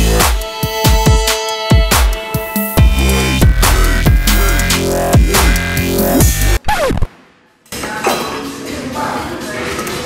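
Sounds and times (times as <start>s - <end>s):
electronic music: 0.0s - 7.2s.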